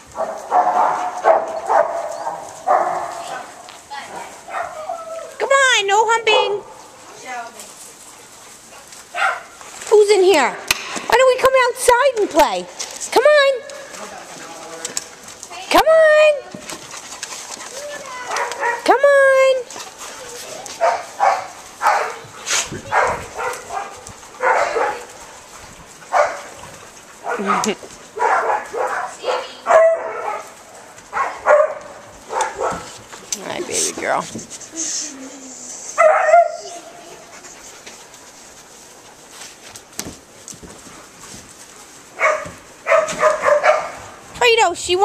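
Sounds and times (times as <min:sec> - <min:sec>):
dog barking: 0:00.2 - 0:03.6, 0:04.5 - 0:04.9, 0:09.1 - 0:09.5, 0:18.1 - 0:18.8, 0:20.8 - 0:22.3, 0:22.9 - 0:25.1, 0:26.1 - 0:26.5, 0:27.2 - 0:32.9, 0:36.0 - 0:36.8, 0:42.2 - 0:44.0.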